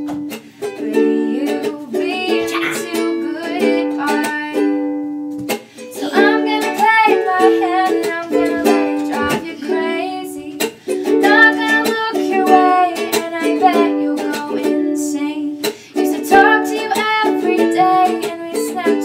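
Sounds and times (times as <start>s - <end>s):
ukulele strumming chords: 0.0s - 19.0s
young woman singing: 0.6s - 5.1s, 5.9s - 19.0s.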